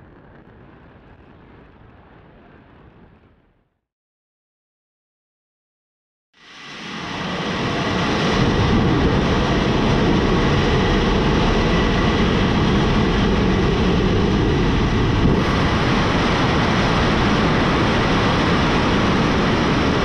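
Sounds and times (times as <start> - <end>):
rocket engines roaring: 0.0 - 3.6, 6.6 - 20.0.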